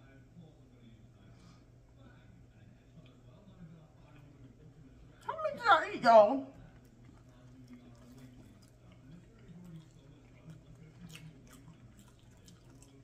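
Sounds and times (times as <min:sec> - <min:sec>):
faint chewing and mouth clicks: 0:06.6 - 0:13.0.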